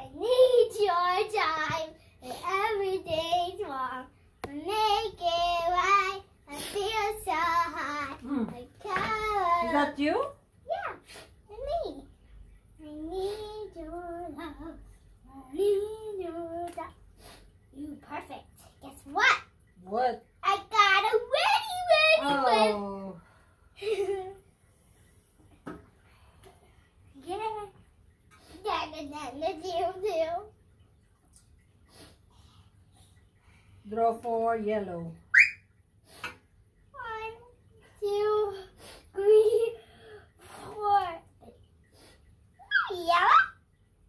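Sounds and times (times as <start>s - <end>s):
girl singing: 0.0s - 9.7s, 12.8s - 17.0s.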